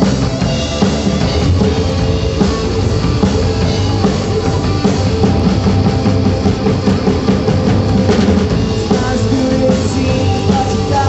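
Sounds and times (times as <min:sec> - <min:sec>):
drum kit: 0:00.0 - 0:11.0
electric guitars: 0:00.0 - 0:11.0
keyboard playing: 0:00.0 - 0:11.0.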